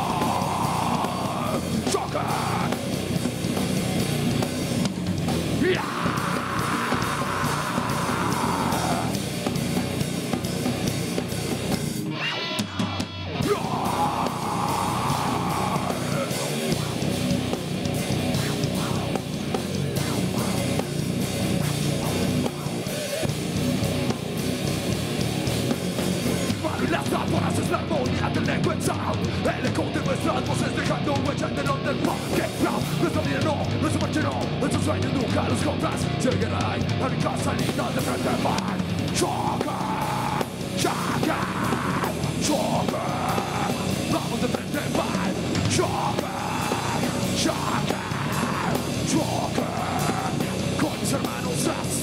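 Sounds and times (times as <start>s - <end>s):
bass guitar: 0.0s - 52.0s
drum kit: 0.0s - 52.0s
heavy distorted guitars: 0.0s - 52.0s.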